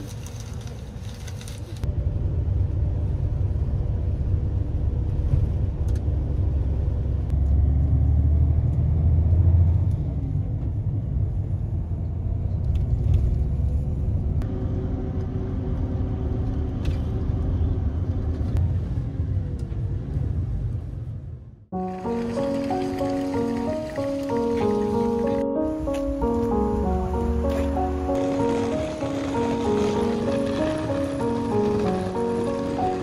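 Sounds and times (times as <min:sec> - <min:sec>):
engine and tyre rumble: 0:00.0 - 0:33.0.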